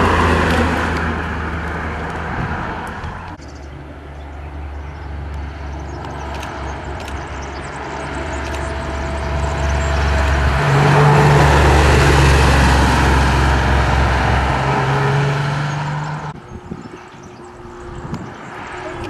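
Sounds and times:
car engine passing by: 0:00.0 - 0:16.4.

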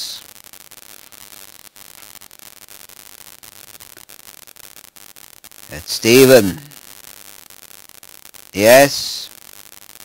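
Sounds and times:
faint crackling clicks: 0:00.0 - 0:05.7
recording hiss: 0:00.0 - 0:10.0.

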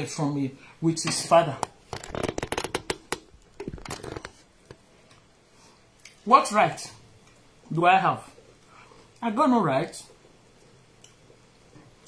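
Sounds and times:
phone handling clicks and rubs: 0:01.6 - 0:04.8.

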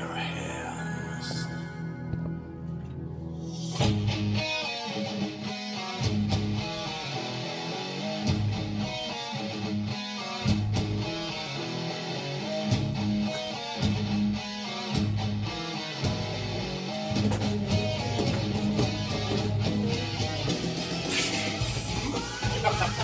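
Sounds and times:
bass guitar: 0:00.0 - 0:23.0
distorted electric guitars: 0:00.0 - 0:23.0
drums: 0:03.5 - 0:04.8, 0:12.6 - 0:23.0.

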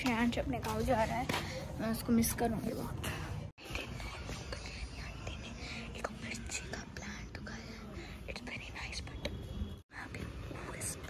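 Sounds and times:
person whispering: 0:03.0 - 0:09.3.

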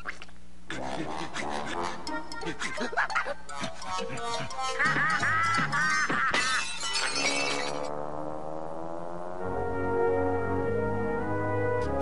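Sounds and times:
cartoon music with held chords: 0:00.8 - 0:06.4, 0:07.0 - 0:12.0.

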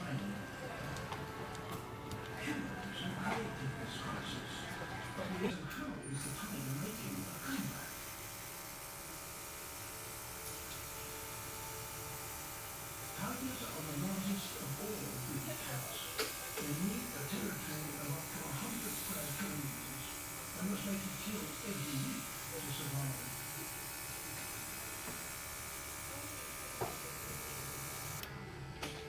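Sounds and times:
airbrush compressor buzzing: 0:06.1 - 0:29.0.

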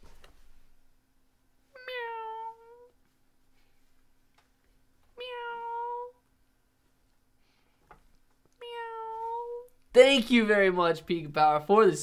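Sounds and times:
recorded cat meow: 0:01.8 - 0:02.9, 0:05.2 - 0:06.2, 0:08.6 - 0:09.7.

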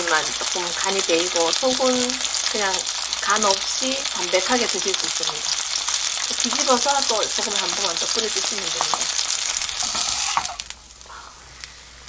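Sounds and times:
fish sizzling in oil: 0:00.0 - 0:12.0.

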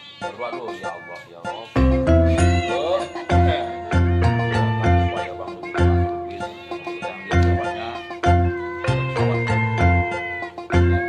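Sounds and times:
background music with steady beat: 0:00.0 - 0:11.0
cat meowing: 0:00.0 - 0:11.0.

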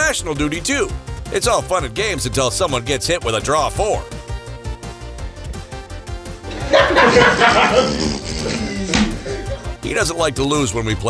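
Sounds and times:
background music: 0:00.0 - 0:11.0
men shouting and laughing: 0:06.4 - 0:09.9.

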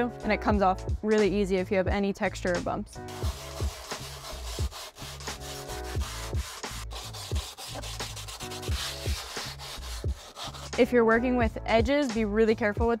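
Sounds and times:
sandpaper rubbing on cement: 0:03.1 - 0:10.8.

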